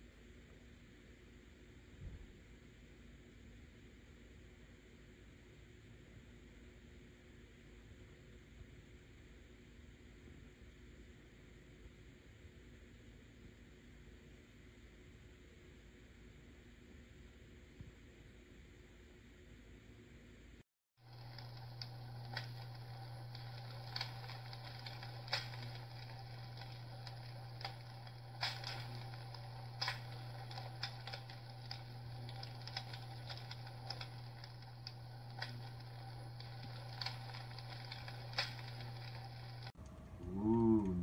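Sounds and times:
low hum: 21.0s - 41.0s
simulated fire crackle: 21.0s - 41.0s.

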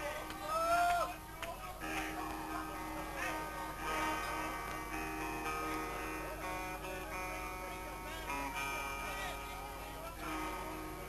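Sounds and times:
electric guitar picked and strummed: 1.8s - 11.0s.

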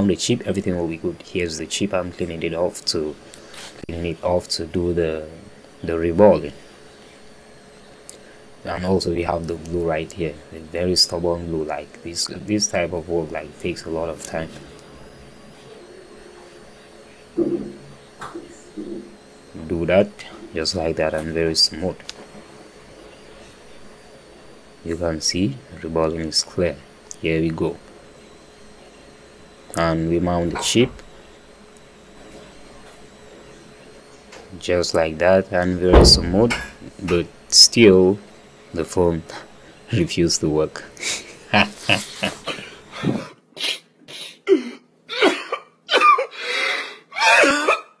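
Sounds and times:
thin high whine: 0.0s - 43.8s
man sobbing: 41.0s - 47.9s.

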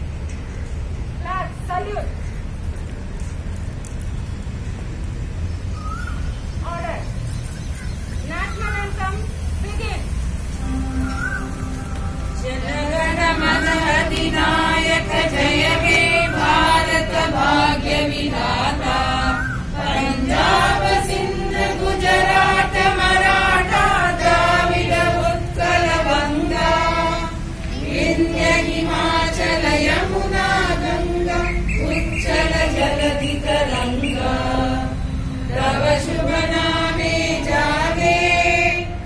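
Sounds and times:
group of voices singing in unison: 10.6s - 39.0s.

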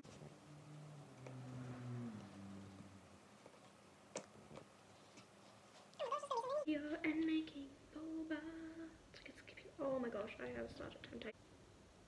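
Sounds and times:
girl humming: 8.0s - 9.0s.

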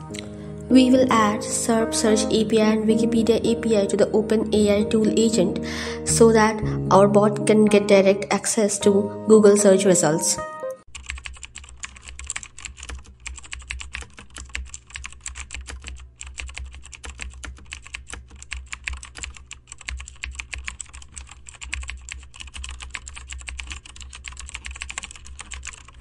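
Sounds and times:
computer keyboard typing: 10.9s - 26.0s.

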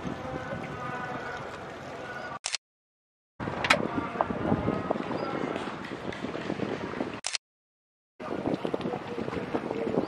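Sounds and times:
wind buffeting microphone: 0.0s - 1.3s, 3.4s - 7.2s, 8.2s - 10.0s.

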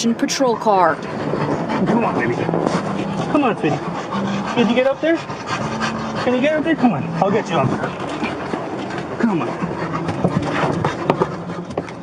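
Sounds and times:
dog scuffling in car: 6.2s - 12.0s.

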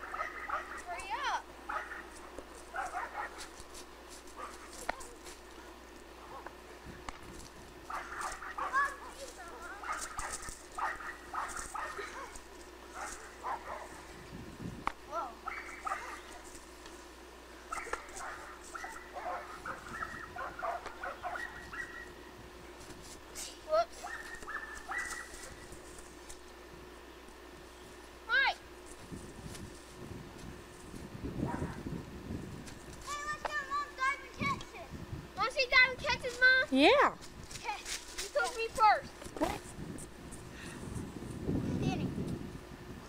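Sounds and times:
animal high-pitched calls: 15.4s - 16.4s.

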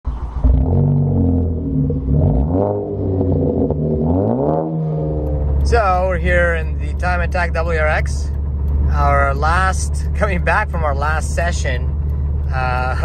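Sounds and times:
car engine revving: 0.2s - 13.0s
low drone inside moving car: 0.2s - 13.0s
man talking: 5.6s - 8.3s, 8.9s - 11.9s, 12.5s - 13.0s.

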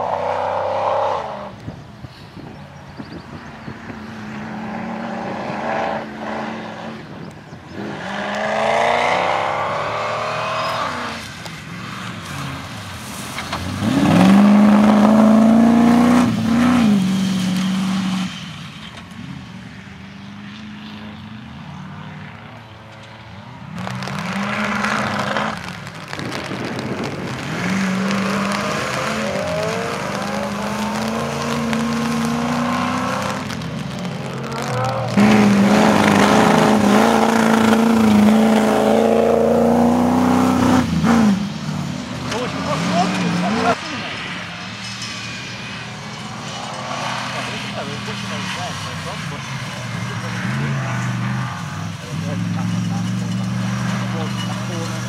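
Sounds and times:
engines revving hard: 0.0s - 1.6s, 4.2s - 18.5s, 23.7s - 44.5s, 46.1s - 55.0s.

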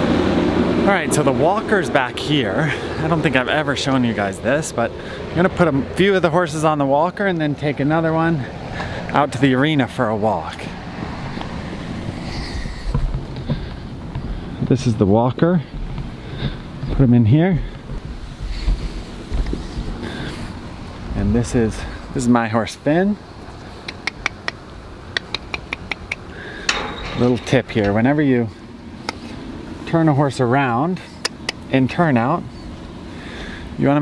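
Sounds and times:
wind rumbling on microphone: 0.0s - 23.7s
faint handling knocks: 11.0s - 14.8s
sharp ringing clicks: 26.7s - 28.0s.

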